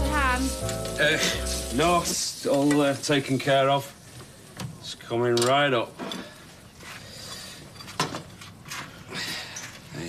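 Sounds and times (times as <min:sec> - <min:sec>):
food sizzling in a frying pan: 0:00.0 - 0:06.0.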